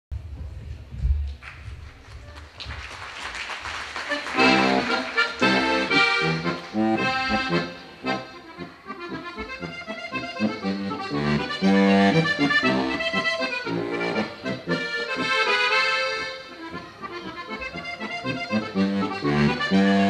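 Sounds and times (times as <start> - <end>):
button accordion tune: 4.0 - 20.0.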